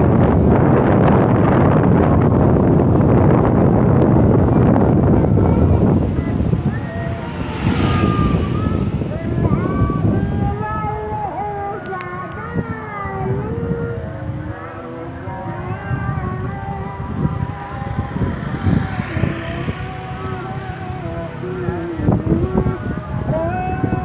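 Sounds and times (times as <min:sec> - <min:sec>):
vehicle running noise: 0:00.0 - 0:24.0
wind rumbling on microphone: 0:00.0 - 0:24.0.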